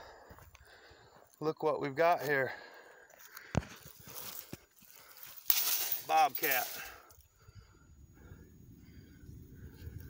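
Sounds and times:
footsteps through dry grass: 3.1s - 7.0s.

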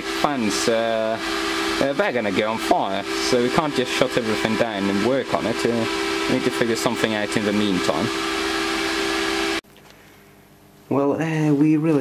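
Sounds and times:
electric fans blowing hiss: 0.0s - 10.4s.

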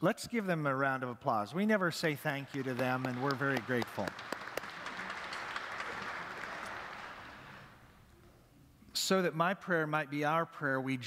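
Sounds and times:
congregation applauding: 2.1s - 8.1s.

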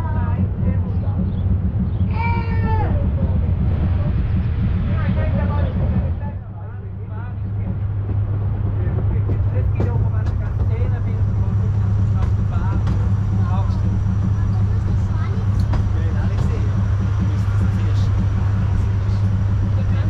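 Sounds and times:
passengers chattering: 0.0s - 20.0s
railway carriage rumble: 0.0s - 20.0s.

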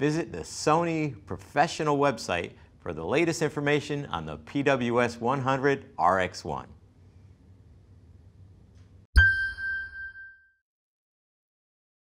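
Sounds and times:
bright chime: 9.2s - 10.6s.

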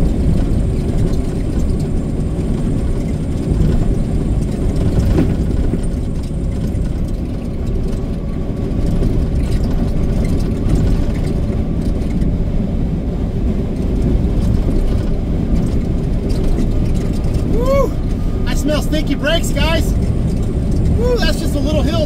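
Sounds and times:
truck engine and road noise: 0.0s - 22.0s.

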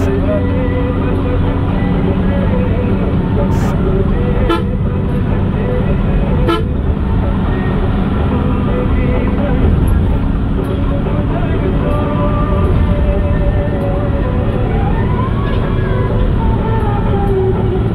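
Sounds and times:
vehicle engine and road noise: 0.0s - 17.9s
vehicle horn toots: 4.4s - 4.8s, 6.4s - 6.8s.

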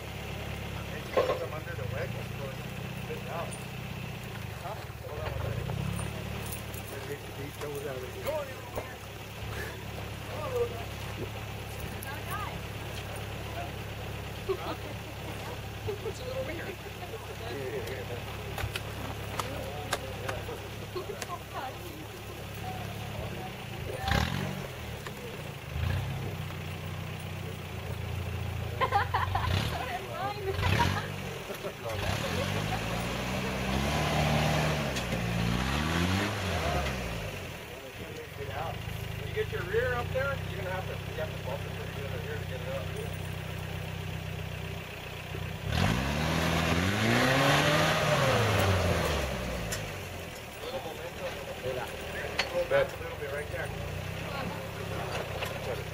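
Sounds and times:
engine idling and revving: 0.0s - 55.9s.

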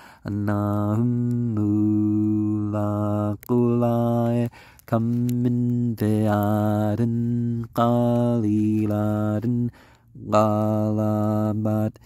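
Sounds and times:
man chanting recitation: 0.2s - 12.0s.

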